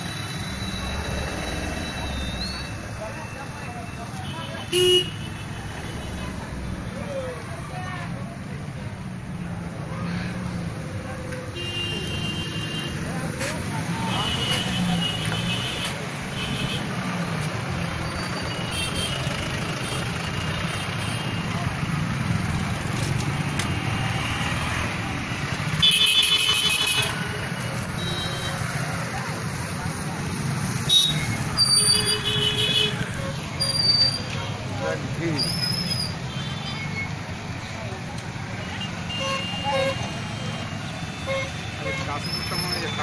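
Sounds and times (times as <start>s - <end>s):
traffic engines running: 0.0s - 43.0s
voices: 0.0s - 43.0s
vehicle horns honking: 4.1s - 5.5s, 11.5s - 17.0s, 25.7s - 27.3s, 30.8s - 34.2s, 38.7s - 43.0s.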